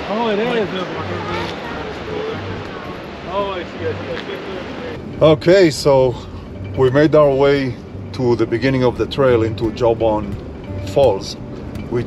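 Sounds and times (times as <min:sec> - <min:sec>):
river rushing over rocks: 0:00.0 - 0:06.1
people talking: 0:00.0 - 0:12.0.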